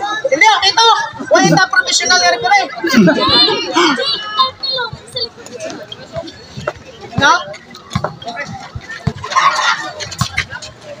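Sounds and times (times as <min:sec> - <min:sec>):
young voices shouting and talking: 0:00.0 - 0:11.0.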